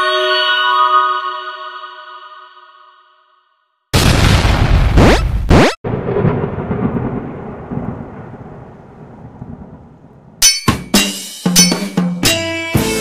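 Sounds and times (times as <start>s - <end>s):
deep rumble: 5.9s - 10.4s
drum-led music: 10.4s - 13.0s.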